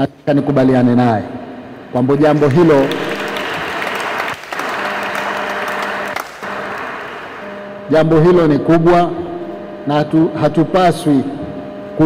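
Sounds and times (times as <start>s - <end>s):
audience applauding: 2.3s - 7.5s.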